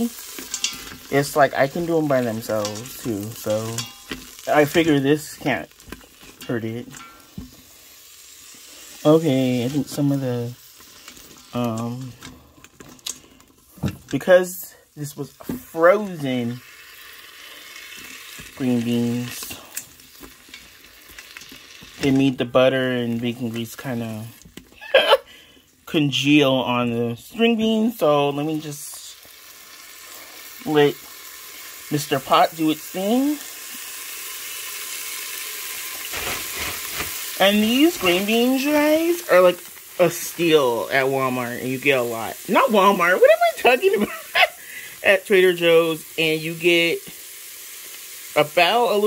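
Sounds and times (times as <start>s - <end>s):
beans sizzling in grease: 0.0s - 49.0s.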